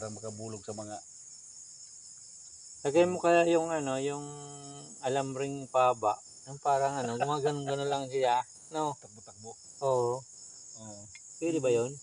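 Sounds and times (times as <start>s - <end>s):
man talking: 0.0s - 1.0s, 2.9s - 10.2s, 10.8s - 12.0s
crickets chirping: 0.0s - 12.0s.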